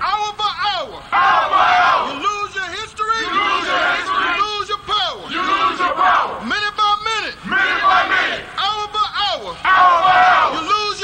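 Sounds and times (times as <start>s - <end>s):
loud wordless chanting voices: 0.9s - 11.0s.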